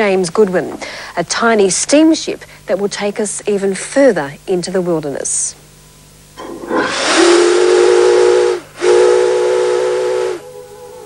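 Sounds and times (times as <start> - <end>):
steam hissing: 6.4 - 11.0
steam whistle blasts: 6.5 - 11.0.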